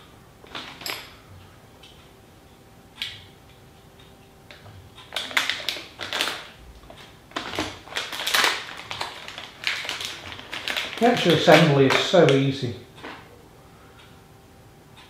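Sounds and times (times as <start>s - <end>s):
small parts clicking and rattling: 5.0s - 12.2s.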